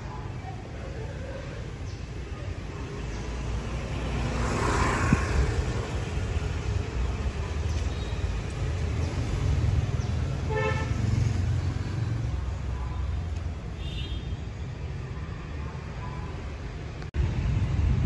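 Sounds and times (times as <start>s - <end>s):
traffic engines running: 0.0s - 18.0s
vehicle passing: 3.1s - 7.4s, 8.8s - 13.3s
vehicle horn toot: 10.5s - 11.0s, 13.8s - 14.4s.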